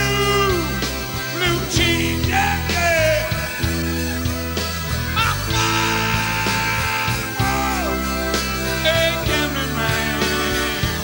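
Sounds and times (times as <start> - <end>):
blues-rock band playing: 0.0 - 11.0.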